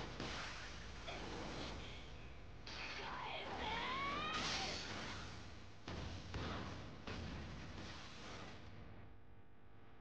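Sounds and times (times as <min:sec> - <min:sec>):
woman's high shout: 0:03.5 - 0:04.7.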